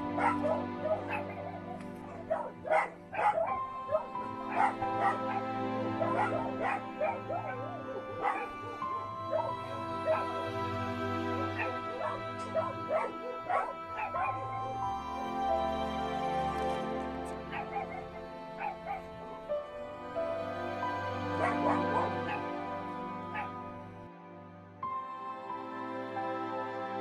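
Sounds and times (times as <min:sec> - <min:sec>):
music with long held notes: 0:00.0 - 0:27.0
dog crying: 0:00.1 - 0:10.4, 0:11.3 - 0:14.7, 0:17.5 - 0:19.1, 0:21.3 - 0:22.6, 0:23.3 - 0:23.6.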